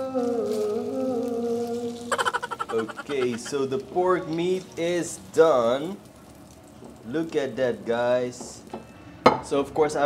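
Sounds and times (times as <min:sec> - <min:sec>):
person singing long notes: 0:00.0 - 0:03.5.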